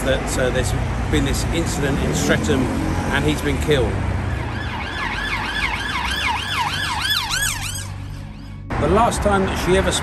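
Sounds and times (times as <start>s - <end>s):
low rumble of road traffic: 0.0s - 10.0s
emergency siren yelping: 4.2s - 8.6s.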